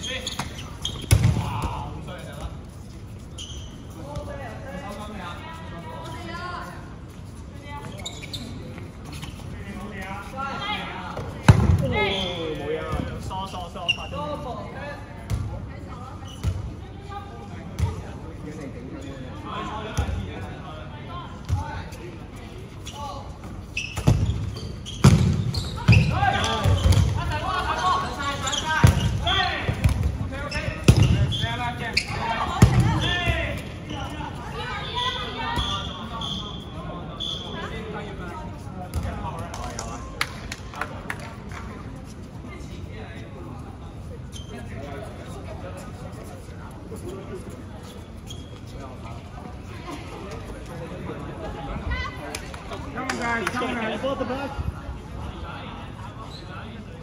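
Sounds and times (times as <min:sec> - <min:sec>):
balls thudding on floor and players: 0:00.2 - 0:01.9, 0:11.1 - 0:12.0, 0:23.9 - 0:27.4, 0:28.5 - 0:31.3, 0:32.0 - 0:33.7, 0:38.8 - 0:40.4.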